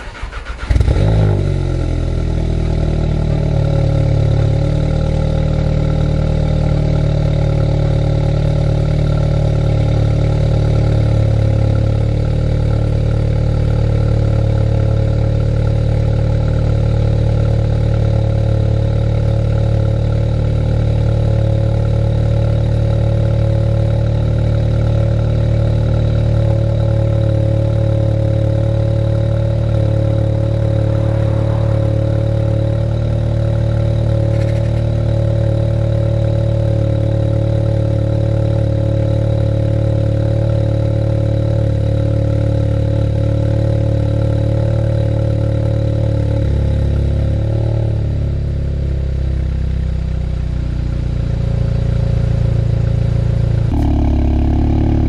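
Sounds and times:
car engine idling: 0.0 - 44.3, 53.2 - 55.0.

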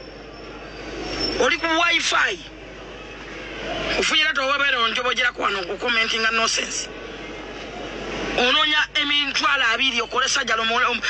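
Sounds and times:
rushing vehicle noise: 0.0 - 11.0.

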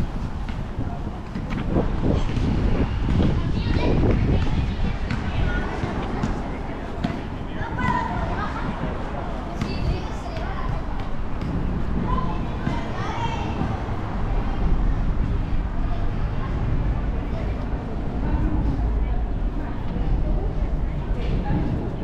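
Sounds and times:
chatter of passers-by: 0.0 - 22.0
steady low rumble: 0.0 - 22.0
children's voices: 2.0 - 22.0.

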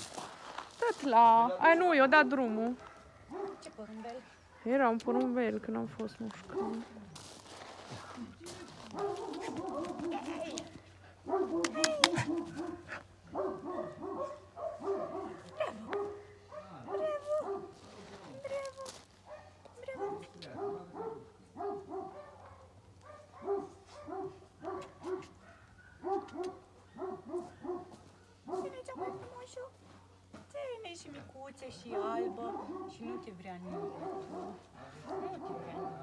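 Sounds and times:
dog barking and yipping: 2.8 - 5.4, 8.9 - 17.8, 19.2 - 29.4, 31.8 - 36.0.

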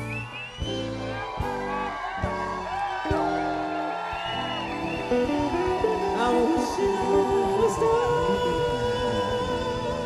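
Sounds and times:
crowd cheering: 0.0 - 9.4
soul band playing slow song: 0.0 - 10.0.

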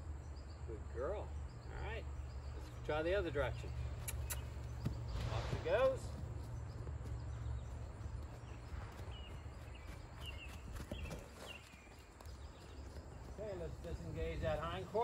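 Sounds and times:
hooves thudding on sand: 3.6 - 15.0.

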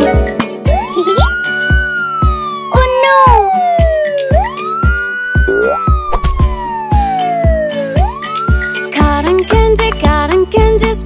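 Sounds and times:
children's music with steady beat: 0.0 - 11.0
cartoon siren wail: 0.7 - 9.0.

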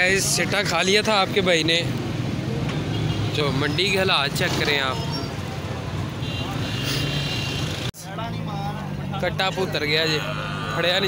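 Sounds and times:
traffic engines humming: 0.0 - 11.0
men's voices: 8.0 - 11.0.

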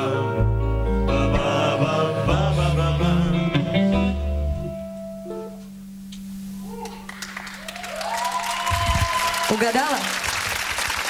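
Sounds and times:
audience clapping and cheering: 6.8 - 11.0.

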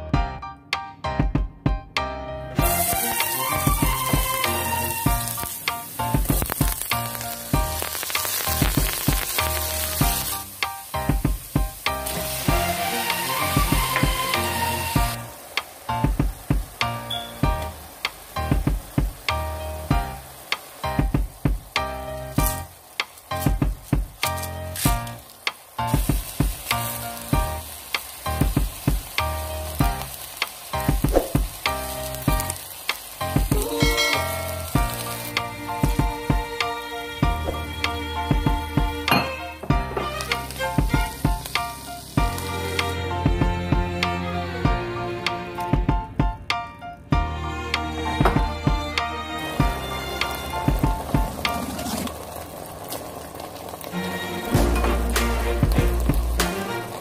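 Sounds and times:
background music with a beat: 0.0 - 51.6, 54.0 - 57.0
food sizzling in oil: 2.6 - 45.7, 48.3 - 57.0.

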